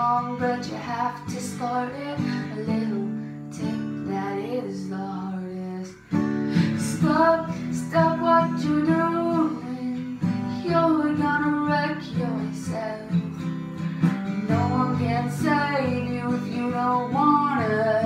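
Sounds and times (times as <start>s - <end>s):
strummed acoustic guitar: 0.0s - 18.0s
woman singing: 0.0s - 18.0s.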